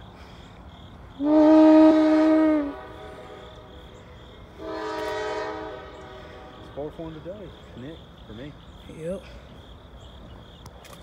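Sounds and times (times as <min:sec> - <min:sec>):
train low running noise: 0:00.0 - 0:11.0
locomotive air horn blasts: 0:01.2 - 0:03.8, 0:04.5 - 0:06.9.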